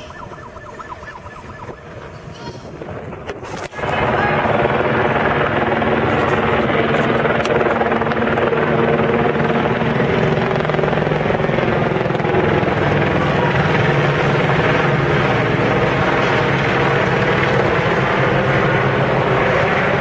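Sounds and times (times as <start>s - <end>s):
helicopter drone: 0.0s - 20.0s
voices: 3.7s - 7.0s.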